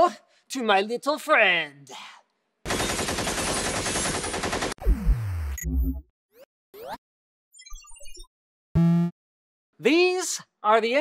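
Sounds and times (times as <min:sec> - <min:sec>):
machine-gun fire: 0:02.7 - 0:04.8.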